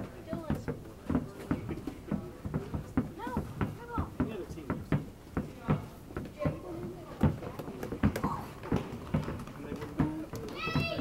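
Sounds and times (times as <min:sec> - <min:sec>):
basketball bouncing on carpet: 0:00.1 - 0:11.0.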